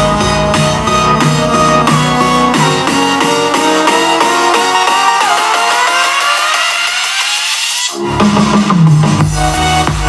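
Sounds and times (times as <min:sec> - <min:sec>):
electronic music with heavy bass: 0:00.0 - 0:10.0.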